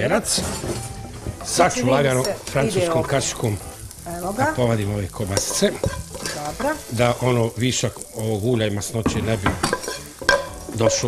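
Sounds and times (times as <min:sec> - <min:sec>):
man speaking: 0:01.5 - 0:03.7, 0:04.4 - 0:05.8, 0:06.9 - 0:09.6, 0:10.8 - 0:11.0
metal spoon scraping frying pan: 0:05.2 - 0:06.9, 0:09.1 - 0:11.0.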